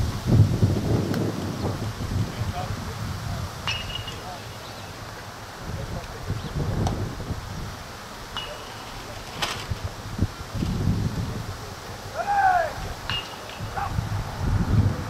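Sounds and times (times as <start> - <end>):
wind rumbling on microphone: 0.0 - 8.4, 9.0 - 15.0
distant shout: 12.1 - 14.0.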